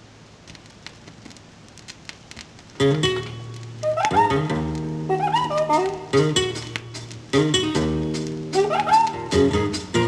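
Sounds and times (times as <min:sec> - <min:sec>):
faint hiss: 0:00.0 - 0:10.0
small clicks: 0:00.4 - 0:02.8.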